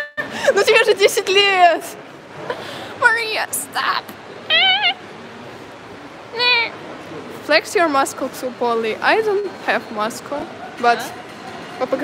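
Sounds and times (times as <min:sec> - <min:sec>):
girl imitating a cat meow: 0:04.5 - 0:05.0.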